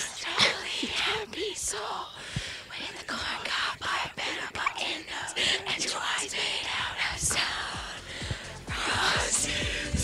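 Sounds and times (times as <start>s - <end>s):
people whispering: 0.0s - 8.1s.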